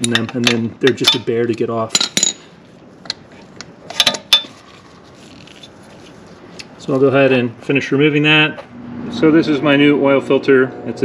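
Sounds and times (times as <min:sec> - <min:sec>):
metal hand tools clinking: 0:00.0 - 0:01.3, 0:01.9 - 0:02.5.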